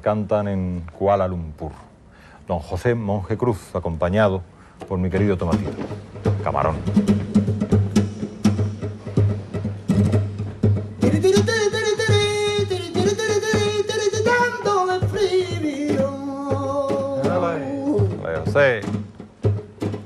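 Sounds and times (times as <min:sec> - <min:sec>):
flamenco guitar strumming: 0:05.0 - 0:20.0
man singing flamenco: 0:11.0 - 0:19.1.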